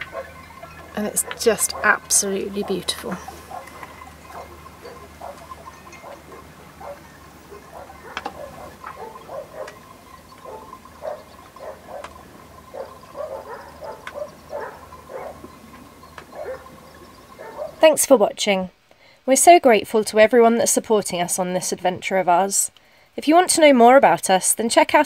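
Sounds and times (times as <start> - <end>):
chorus of short animal calls: 0.0 - 17.8
faint steady hum: 0.0 - 25.0.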